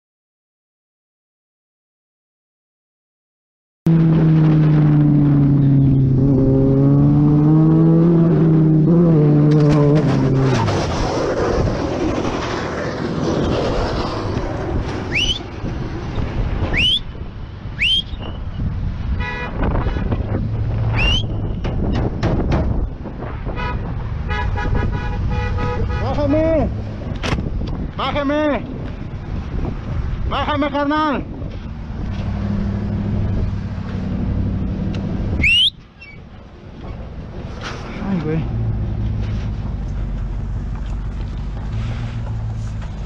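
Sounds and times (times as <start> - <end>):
motorcycle engine revving: 3.9 - 11.0
road and wind noise: 3.9 - 43.0
short rising squeaks: 13.7 - 15.6, 20.9 - 21.7, 35.4 - 36.3.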